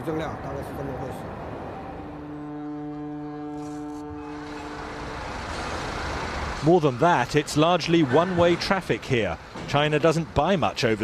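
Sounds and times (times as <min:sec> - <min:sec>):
ship's horn blast: 0:01.6 - 0:05.8.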